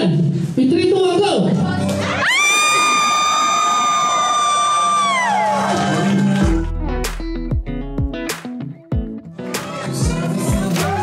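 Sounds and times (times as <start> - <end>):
crowd cheering and shouting: 1.9 - 7.0, 9.4 - 11.0
high-pitched scream into microphone: 2.2 - 6.2
music with deep bass: 5.8 - 11.0.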